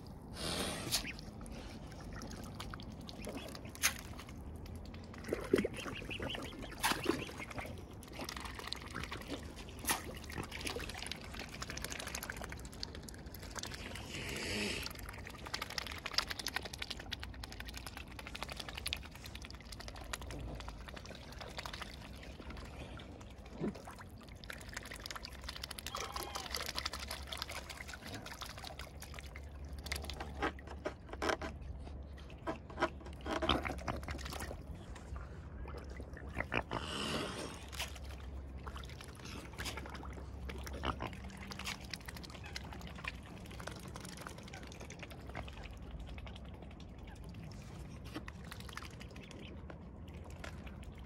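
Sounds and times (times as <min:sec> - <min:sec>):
swan bills dabbling in water: 0:00.0 - 0:51.0.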